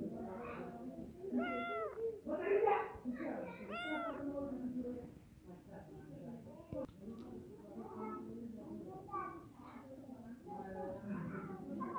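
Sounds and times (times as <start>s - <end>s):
cat meowing: 1.3s - 2.2s, 3.6s - 4.3s
rough cat sound: 1.4s - 2.1s, 3.7s - 4.2s.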